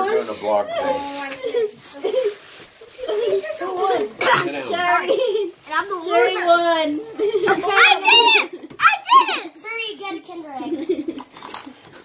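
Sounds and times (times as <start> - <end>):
children talking excitedly: 0.0 - 11.2.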